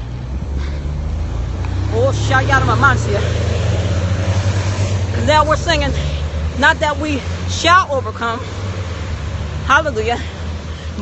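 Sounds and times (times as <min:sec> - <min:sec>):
vehicle engine humming: 0:00.0 - 0:11.0
woman speaking: 0:01.9 - 0:03.4, 0:05.2 - 0:08.5, 0:09.6 - 0:10.3.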